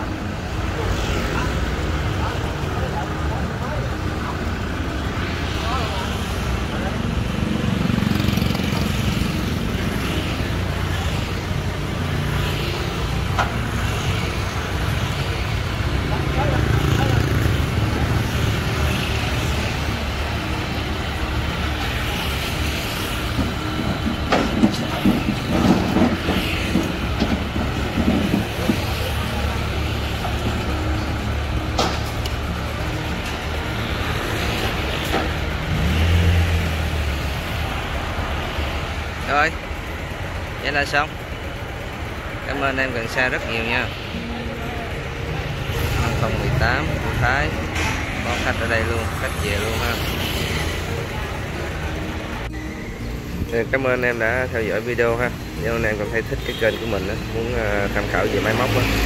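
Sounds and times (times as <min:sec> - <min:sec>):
tractor diesel engine running: 0:12.8 - 0:59.0.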